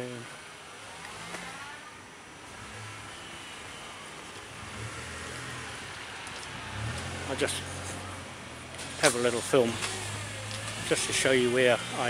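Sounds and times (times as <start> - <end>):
cars driving by: 0.2 - 12.0.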